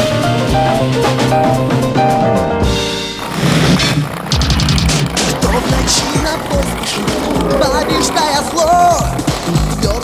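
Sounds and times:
music playing: 0.0 - 3.2, 4.5 - 10.0
skateboard wheels rolling on bricks: 2.9 - 10.0.

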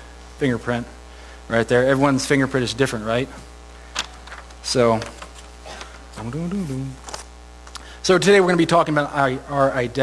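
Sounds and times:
low electrical hum: 0.0 - 10.0
man's drawn-out hesitation sound: 6.2 - 7.2.

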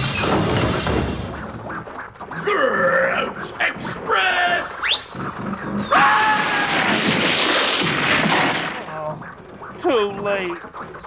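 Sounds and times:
whistle rising and gliding down: 4.8 - 6.0.

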